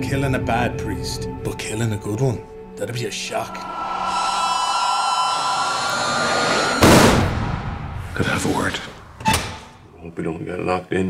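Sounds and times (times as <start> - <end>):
loud bang: 3.4 - 9.4
high ringing tone: 3.5 - 6.8.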